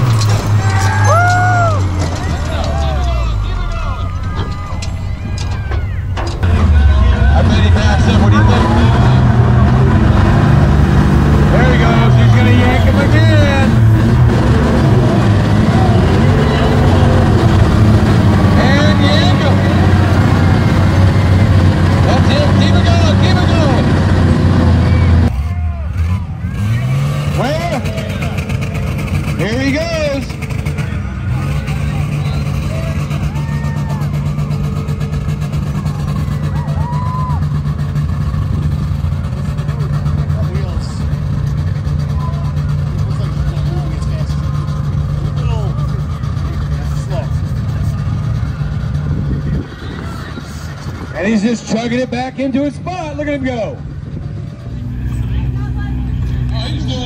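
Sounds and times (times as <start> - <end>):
crowd voices: 0.0 - 57.0
truck engine running: 0.0 - 57.0.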